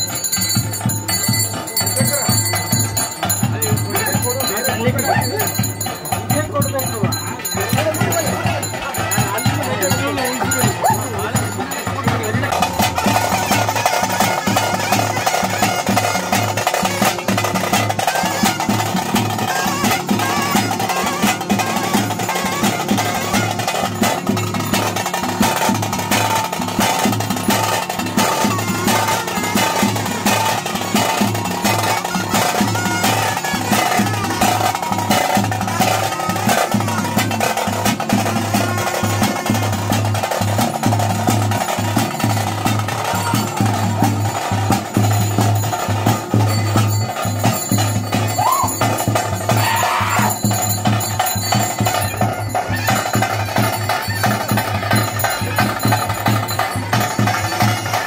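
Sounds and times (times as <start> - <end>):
drum ensemble fast beats: 0.0 - 58.0.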